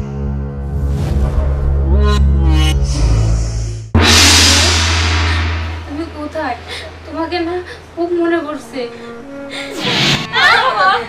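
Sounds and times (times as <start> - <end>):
steady low drone: 0.0 - 8.3
loud crash-like hit: 4.0 - 7.9.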